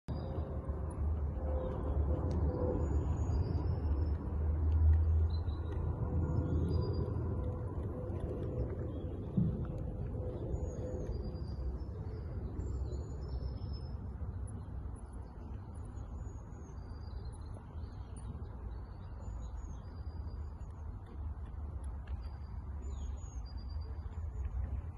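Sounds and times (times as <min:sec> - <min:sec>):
steady low rumble: 0:00.1 - 0:24.9
small birds chirping: 0:04.9 - 0:24.9.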